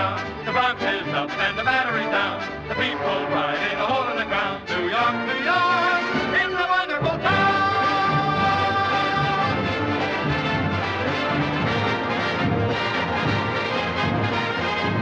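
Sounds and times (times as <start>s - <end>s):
person singing: 0.0s - 9.7s
orchestral show tune with brass: 0.0s - 15.0s.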